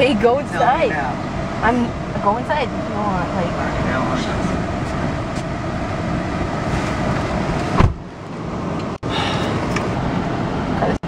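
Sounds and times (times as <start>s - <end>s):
car cabin rumble and hiss: 0.0s - 11.0s
car door shutting: 6.7s - 8.1s.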